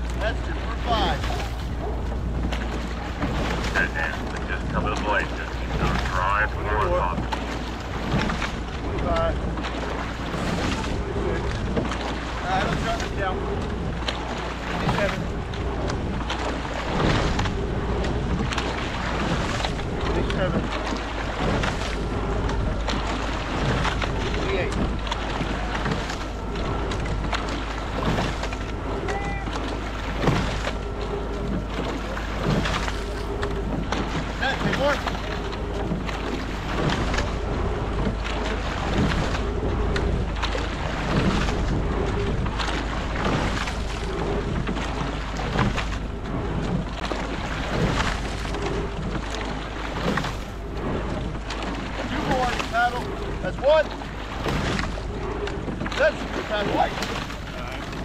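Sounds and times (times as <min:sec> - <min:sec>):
oars driving through water: 0:00.0 - 0:58.0.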